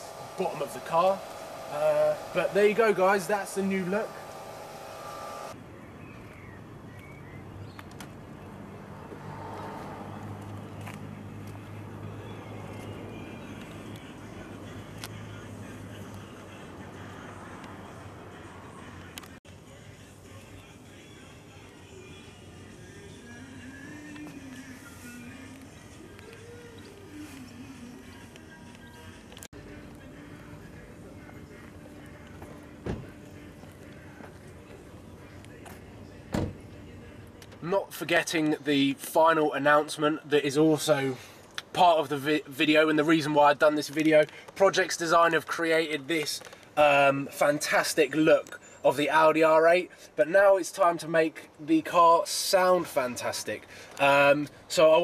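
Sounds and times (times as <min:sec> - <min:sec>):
car engine idling: 0:00.0 - 0:05.6
dull thump: 0:32.8 - 0:33.1, 0:36.3 - 0:36.6.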